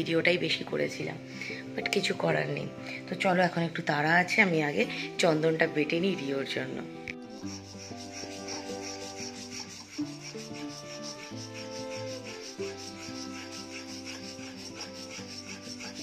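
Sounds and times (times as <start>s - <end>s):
background music: 0.0s - 16.0s
wooden stick scraping on stone slab: 7.1s - 16.0s.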